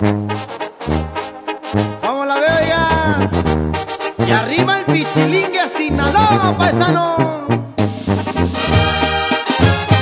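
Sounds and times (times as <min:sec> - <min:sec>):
brass section playing: 0:00.0 - 0:10.0
tuba bass line: 0:00.0 - 0:10.0
drum hits: 0:07.8 - 0:10.0.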